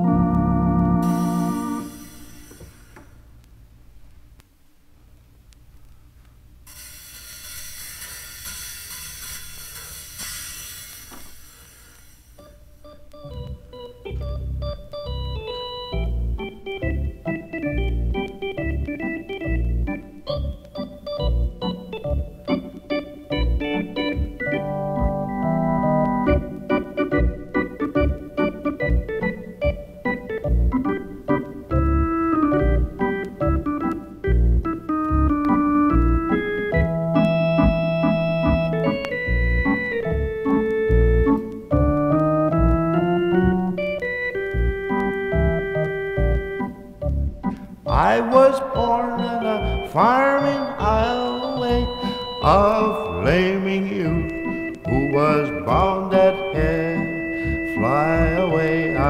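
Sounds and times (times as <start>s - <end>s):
organ music: 0.0s - 2.6s, 12.4s - 59.0s
bright rising hiss: 0.8s - 3.4s, 6.6s - 12.7s.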